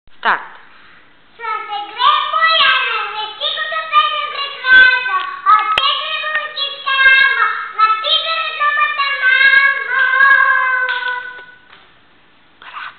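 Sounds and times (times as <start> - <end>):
girl singing: 1.3 - 11.7.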